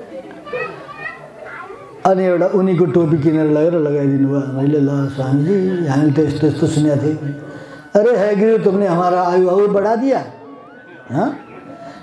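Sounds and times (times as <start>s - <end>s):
faint high-pitched voices: 0.0s - 12.0s
man talking: 2.0s - 10.4s, 11.1s - 11.4s.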